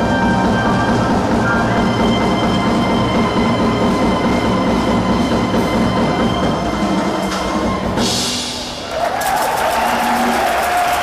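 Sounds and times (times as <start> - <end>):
live jazz quartet playing: 0.0 - 4.1.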